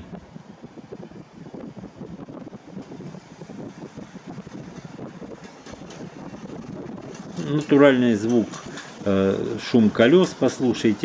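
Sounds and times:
moving vehicle rumble: 0:00.0 - 0:11.0
wind on microphone: 0:00.0 - 0:11.0.

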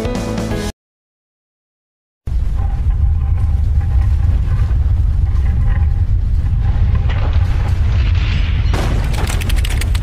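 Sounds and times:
low rumble: 0:02.3 - 0:10.0.

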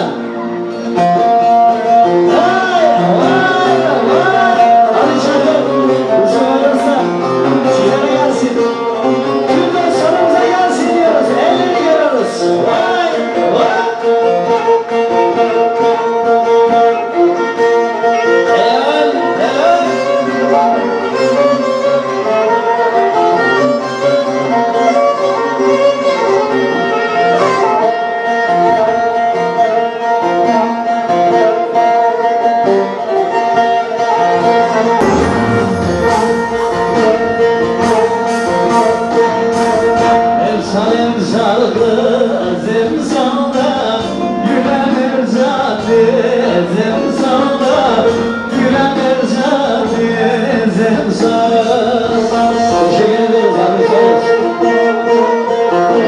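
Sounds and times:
folk band through loudspeakers: 0:00.0 - 0:56.0
instrumental backing: 0:00.0 - 0:56.0
man singing into a microphone: 0:01.5 - 0:16.1, 0:18.1 - 0:56.0.

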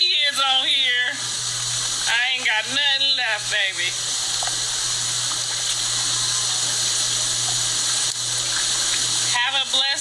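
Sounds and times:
steady rushing hiss: 0:00.1 - 0:10.0.

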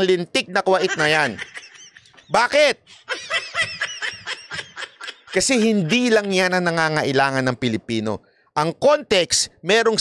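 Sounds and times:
person snickering: 0:03.0 - 0:06.4.

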